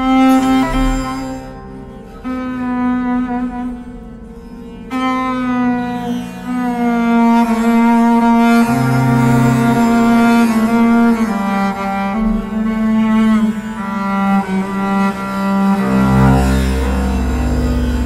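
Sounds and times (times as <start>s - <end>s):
bowed bass long notes: 0.0s - 18.0s.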